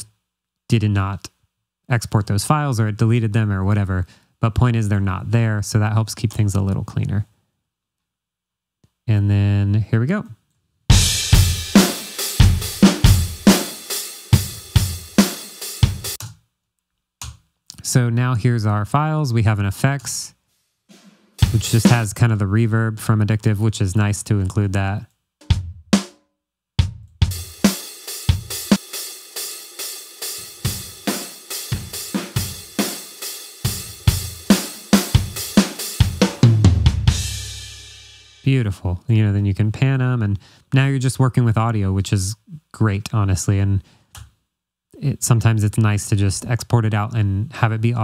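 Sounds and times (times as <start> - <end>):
drum kit playing steady beat: 10.9 - 16.3, 20.9 - 22.4, 25.4 - 26.2, 26.8 - 38.6.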